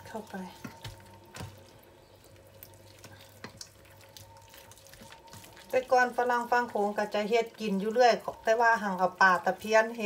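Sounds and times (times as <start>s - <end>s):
hands squishing wet rice mixture: 0.0s - 10.0s.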